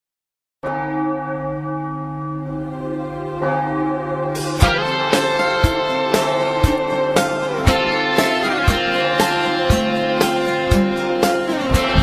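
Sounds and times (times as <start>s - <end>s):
bell ringing deep tone: 0.6s - 10.0s.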